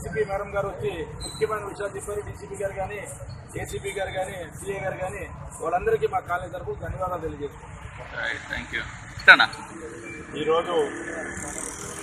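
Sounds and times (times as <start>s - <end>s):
road traffic: 0.0s - 12.0s
street noise: 0.0s - 12.0s.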